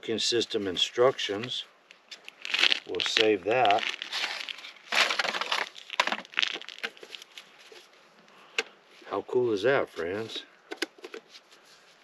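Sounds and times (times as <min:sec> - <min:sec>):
paper packaging rustling: 0:02.1 - 0:07.9.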